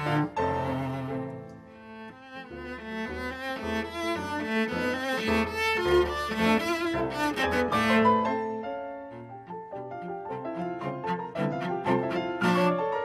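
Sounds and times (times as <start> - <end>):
bowed cello: 0.0 - 13.0
piano accompaniment: 0.0 - 13.0.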